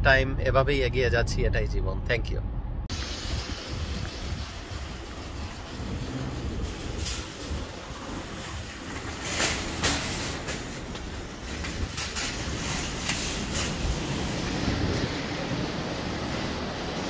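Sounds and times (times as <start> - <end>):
low outdoor rumble: 0.0 - 17.0.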